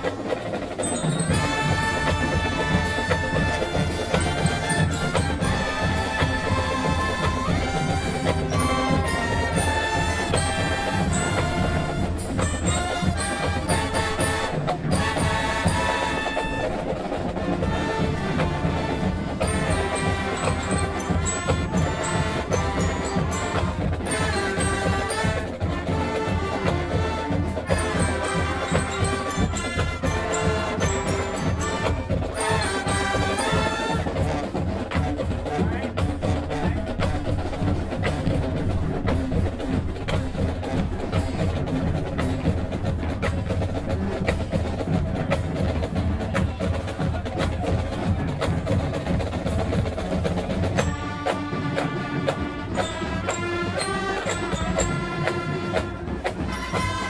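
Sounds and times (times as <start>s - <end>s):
drumline of snares and bass drums: 0.0s - 57.0s
brass and clarinets playing tune: 0.8s - 45.0s, 49.4s - 57.0s.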